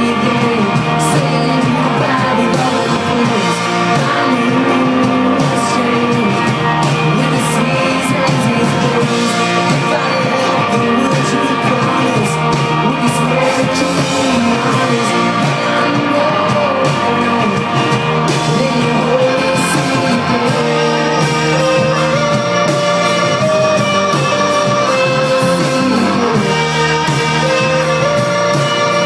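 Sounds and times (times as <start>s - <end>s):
person singing: 0.0s - 29.0s
rock band playing: 0.0s - 29.0s.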